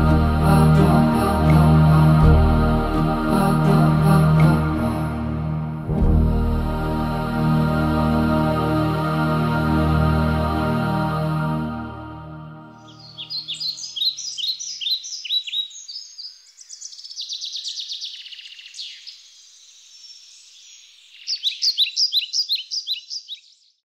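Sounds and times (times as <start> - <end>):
soft background music: 0.0 - 13.4
birds chirping and trilling: 12.4 - 23.8.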